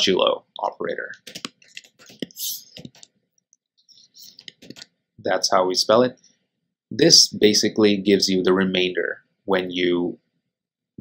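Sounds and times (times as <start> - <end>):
computer keyboard typing: 1.2 - 3.1, 4.4 - 4.8.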